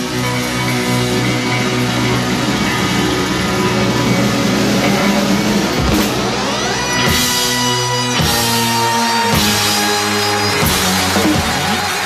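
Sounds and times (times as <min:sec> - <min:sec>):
drums: 0:00.0 - 0:12.0
electric guitar chords: 0:00.0 - 0:12.0
rising pitch sweep: 0:00.8 - 0:11.4.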